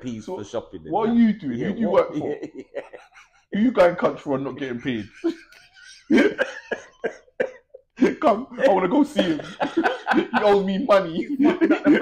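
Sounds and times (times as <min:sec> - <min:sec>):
man laughing hard: 0:02.2 - 0:03.4, 0:04.8 - 0:12.0.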